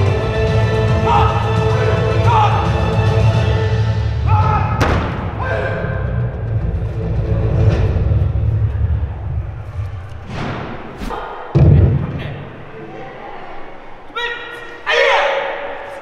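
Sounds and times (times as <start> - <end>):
sharp thud: 4.8 - 5.3.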